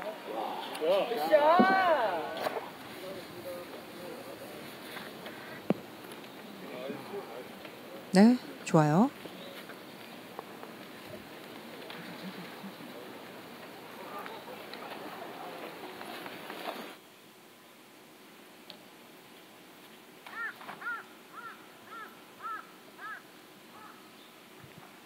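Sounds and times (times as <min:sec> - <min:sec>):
murmur of voices: 0:00.0 - 0:17.0.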